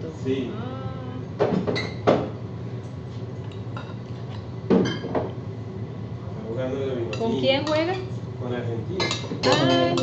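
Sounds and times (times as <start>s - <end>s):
low room hum: 0.0s - 10.0s
dishes and cutlery clinking: 3.4s - 5.3s, 8.9s - 10.0s.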